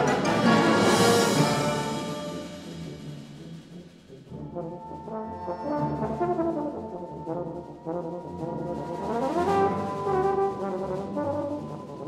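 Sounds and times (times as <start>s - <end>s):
wind band playing: 0.0s - 12.0s.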